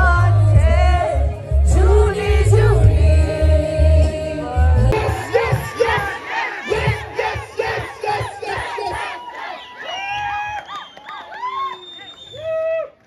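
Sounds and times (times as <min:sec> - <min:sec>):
concert crowd cheering: 0:04.9 - 0:13.0.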